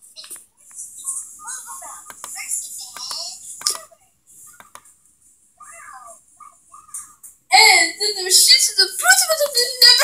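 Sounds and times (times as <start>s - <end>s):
high-pitched cartoon voice: 5.6s - 10.0s.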